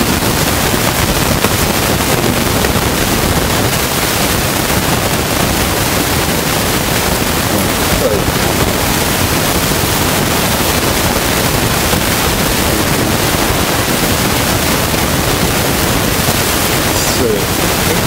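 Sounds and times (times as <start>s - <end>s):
loud static hiss: 0.0s - 18.0s
faint voice: 7.4s - 8.8s, 12.6s - 13.4s, 16.8s - 18.0s.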